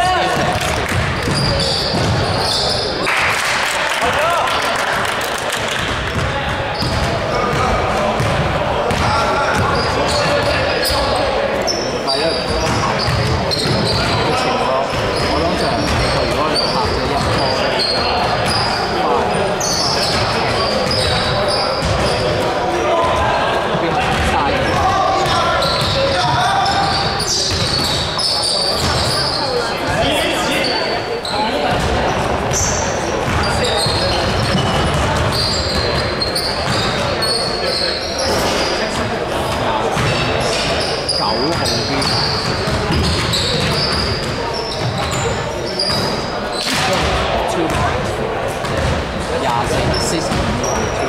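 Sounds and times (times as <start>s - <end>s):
sneakers squeaking: 0.0s - 4.1s, 5.5s - 51.0s
players calling out: 0.0s - 51.0s.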